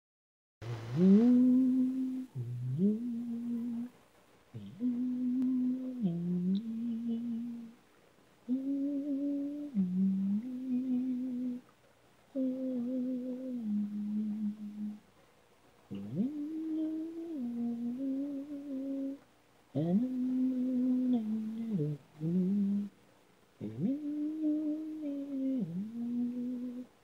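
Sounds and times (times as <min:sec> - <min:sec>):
person humming low melody: 0:00.6 - 0:03.9, 0:04.6 - 0:07.8, 0:08.4 - 0:11.6, 0:12.3 - 0:15.0, 0:15.9 - 0:22.9, 0:23.6 - 0:27.0.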